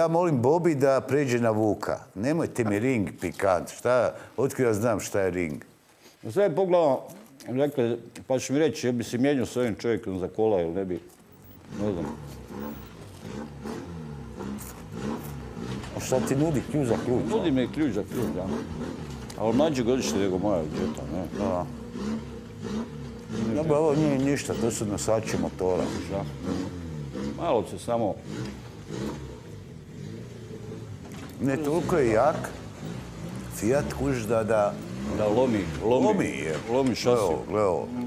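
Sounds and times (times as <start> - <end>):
car engine revving: 11.4 - 38.0.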